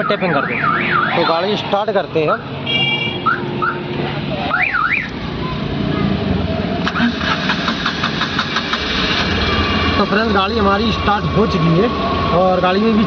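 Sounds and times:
car engine running: 0:06.8 - 0:13.0.

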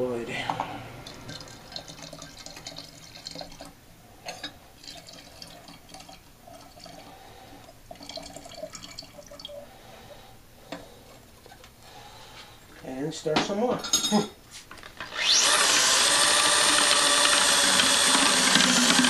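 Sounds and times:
liquid trickling and splashing: 0:01.0 - 0:03.8, 0:04.8 - 0:09.8.

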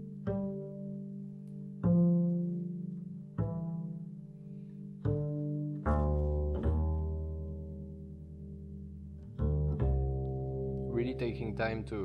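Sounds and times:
double bass plucked pizzicato: 0:00.0 - 0:12.0.

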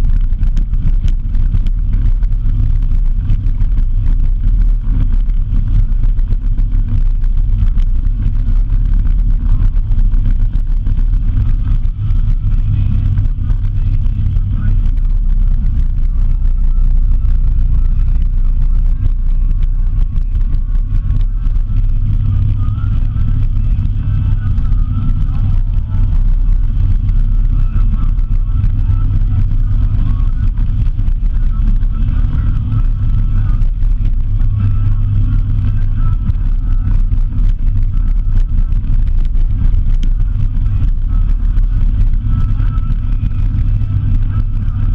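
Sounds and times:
tyres on dirt road: 0:00.0 - 0:44.9
vehicle engine rumble: 0:00.0 - 0:44.9
wind on camera: 0:00.0 - 0:44.9.

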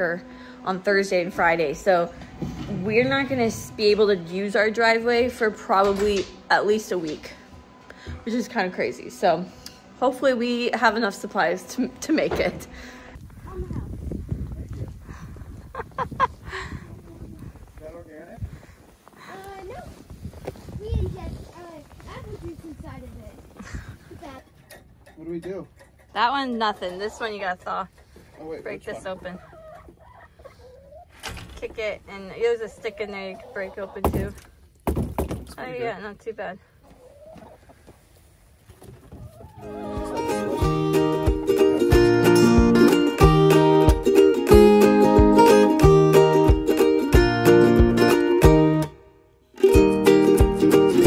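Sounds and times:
indistinct voices talking: 0:00.0 - 0:07.3, 0:39.6 - 0:43.5
low rumble: 0:00.7 - 0:06.6
hens clucking: 0:23.4 - 0:34.5, 0:35.6 - 0:42.2.

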